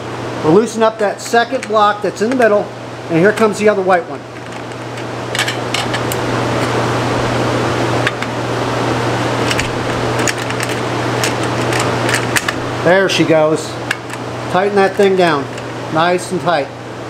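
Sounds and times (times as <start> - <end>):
fan noise with low hum: 0.0 - 17.0.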